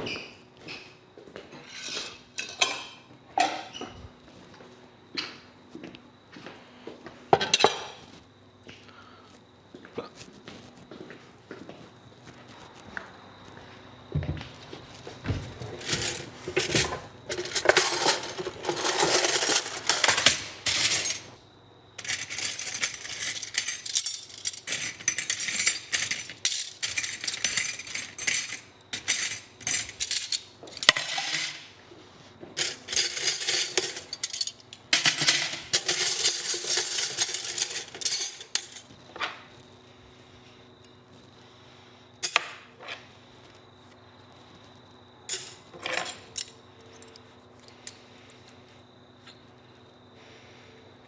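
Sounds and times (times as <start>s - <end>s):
metal cutlery clinking: 15.8s - 21.3s.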